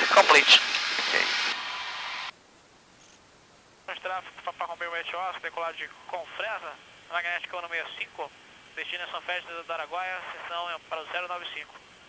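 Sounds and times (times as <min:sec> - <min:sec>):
intercom hiss: 0:00.0 - 0:02.3.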